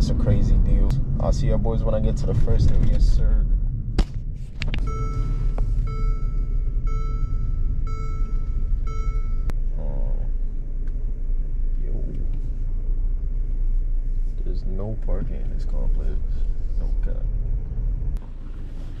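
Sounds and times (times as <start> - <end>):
road and engine rumble in car: 0.0 - 19.0
dashboard warning chime: 4.8 - 9.5.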